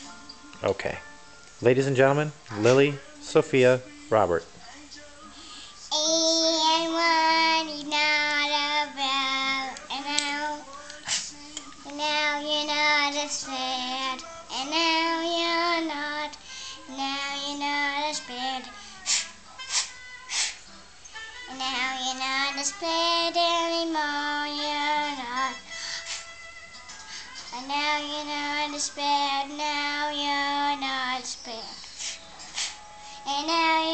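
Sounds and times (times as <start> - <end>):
girl singing: 4.6 - 20.6, 21.4 - 26.0, 27.1 - 31.9, 33.1 - 33.9.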